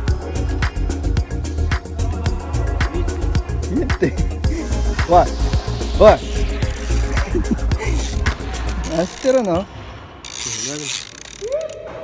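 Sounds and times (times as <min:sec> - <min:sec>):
handheld gadget mechanical whirr: 0:10.2 - 0:11.7.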